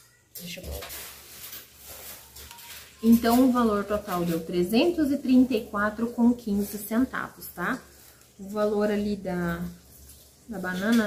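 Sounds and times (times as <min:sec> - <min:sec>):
paper receipt rustling: 0:00.0 - 0:11.0.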